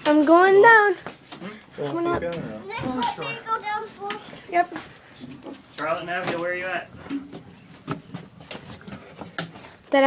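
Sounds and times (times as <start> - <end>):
footsteps on wooden boards: 4.0 - 9.8.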